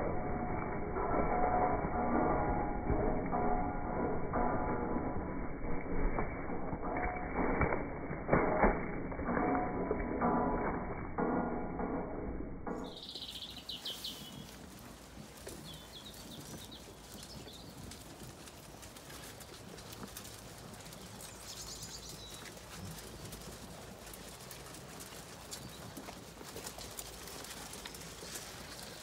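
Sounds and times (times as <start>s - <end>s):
small birds chirping: 12.9s - 18.5s, 19.2s - 23.7s, 25.4s - 26.3s, 27.7s - 29.0s
sheep chewing feed: 12.9s - 29.0s.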